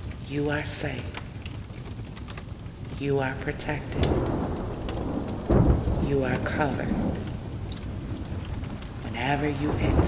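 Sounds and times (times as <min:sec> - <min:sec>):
low rumble of thunder: 0:00.0 - 0:10.0
steady rain: 0:00.0 - 0:10.0.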